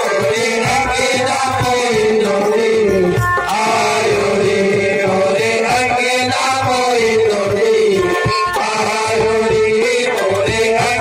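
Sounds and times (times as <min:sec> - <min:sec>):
hand drums beating: 0:00.0 - 0:11.0
harmonium: 0:00.0 - 0:11.0
men singing devotional chant: 0:00.0 - 0:11.0.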